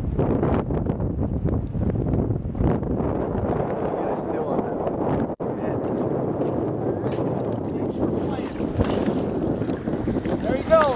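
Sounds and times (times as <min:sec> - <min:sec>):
wind buffeting microphone: 0:00.0 - 0:10.9
choppy water: 0:01.4 - 0:10.9.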